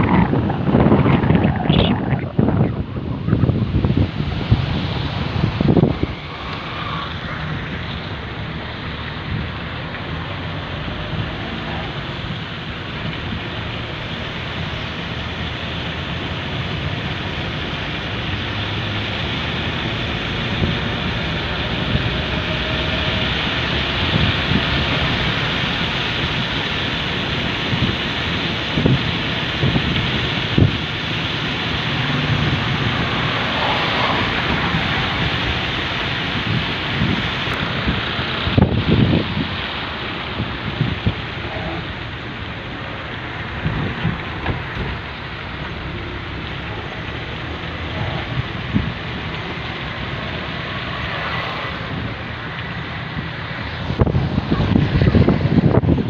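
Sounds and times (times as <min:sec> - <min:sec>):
wind buffeting microphone: 0:00.0 - 0:13.8, 0:14.6 - 0:56.0
vehicle tyres on wet road: 0:00.0 - 0:56.0.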